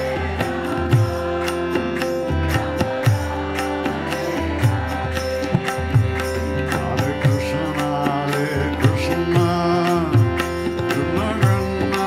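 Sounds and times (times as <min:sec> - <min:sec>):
harmonium chords: 0:00.0 - 0:12.0
tabla strokes: 0:00.0 - 0:12.0.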